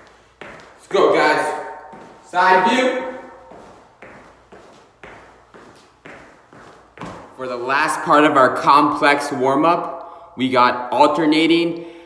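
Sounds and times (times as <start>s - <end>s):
feet thudding on floor: 0.0s - 7.4s.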